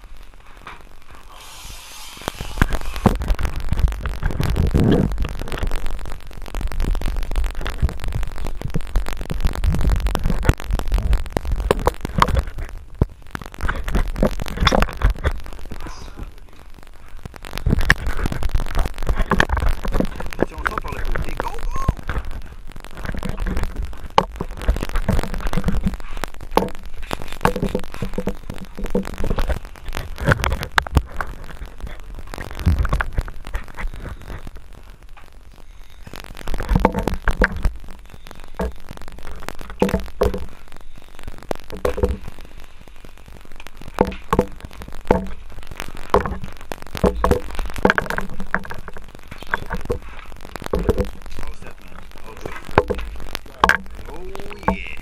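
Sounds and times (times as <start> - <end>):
muffled camera handling rumble: 2.2 - 16.7, 17.3 - 34.6, 41.4 - 42.3, 43.6 - 54.1
indistinct voices: 20.2 - 22.2, 49.3 - 55.0
knocks and clatter: 22.0 - 31.6, 44.0 - 51.3, 52.4 - 54.0.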